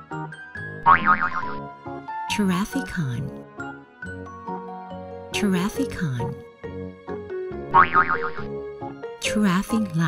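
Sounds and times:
cheerful children's music: 0.0 - 10.0.

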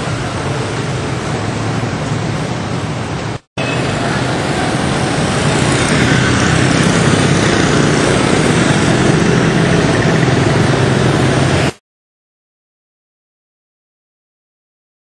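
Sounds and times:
motorbike and scooter traffic: 0.0 - 11.8.

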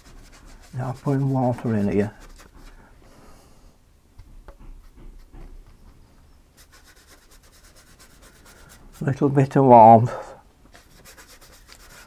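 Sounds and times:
brush strokes on paper: 0.0 - 2.9, 6.5 - 9.2, 10.7 - 12.0.

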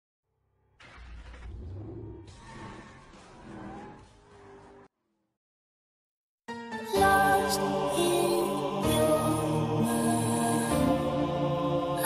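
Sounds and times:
low rumble: 0.7 - 4.7.

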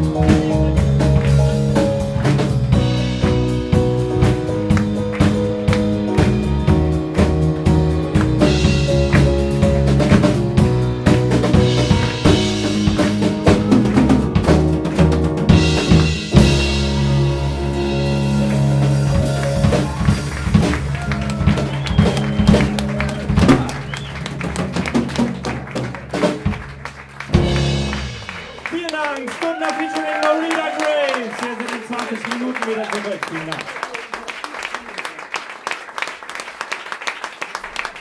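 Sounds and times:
busy drums: 0.0 - 32.8
live band playing: 0.0 - 34.8.

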